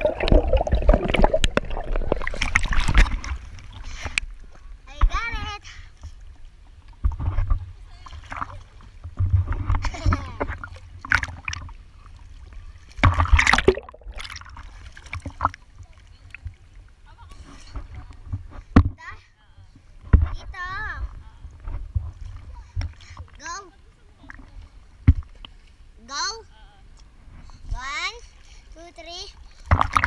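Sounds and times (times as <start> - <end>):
low rumbling handling noise: 0.0 - 5.1
pool water splashing: 0.0 - 5.4, 6.2 - 18.3.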